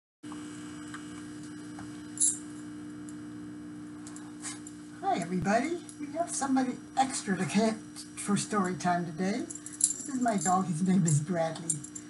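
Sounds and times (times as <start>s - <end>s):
steady electrical hum: 0.2s - 12.0s.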